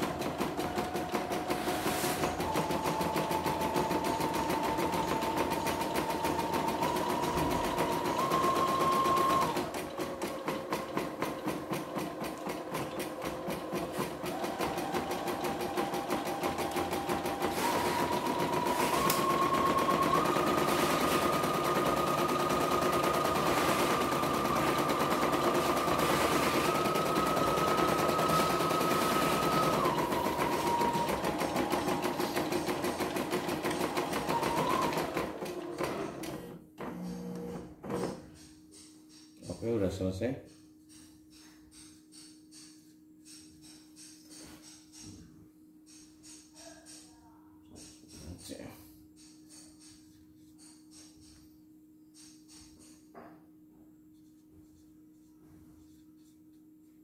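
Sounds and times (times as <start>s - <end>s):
embroidery machine needle stitching: 0.0s - 36.4s.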